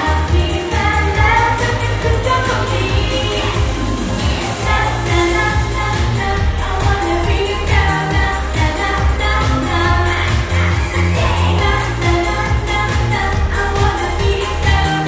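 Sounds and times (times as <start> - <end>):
backing track with bass beat: 0.0 - 15.0
girl singing pop song: 0.0 - 15.0.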